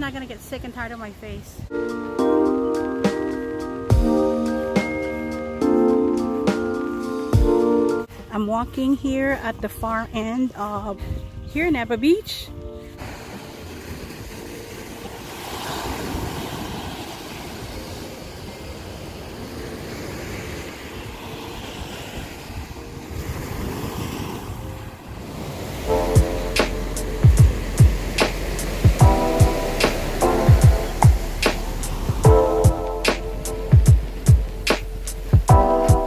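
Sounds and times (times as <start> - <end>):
background music with beat and bass: 1.7 - 8.1, 25.9 - 36.0
surf washing onto beach: 13.0 - 36.0.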